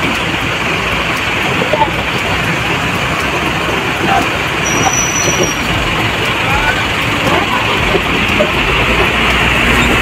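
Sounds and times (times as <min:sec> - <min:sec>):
buses running and manoeuvring: 0:00.0 - 0:10.0
thin high whistle-like tone: 0:04.6 - 0:05.6.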